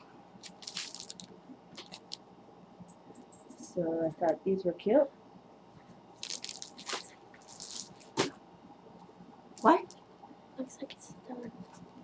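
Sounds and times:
sticker packaging rustling: 0:00.4 - 0:02.2, 0:06.2 - 0:08.3.

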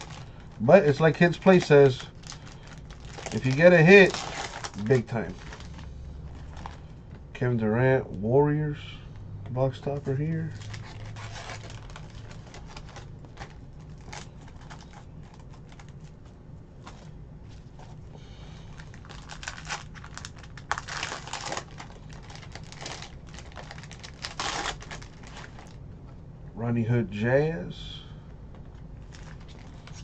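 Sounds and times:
foil wrappers crinkling: 0:00.0 - 0:06.9, 0:09.9 - 0:18.0, 0:18.6 - 0:25.8, 0:28.7 - 0:30.0.

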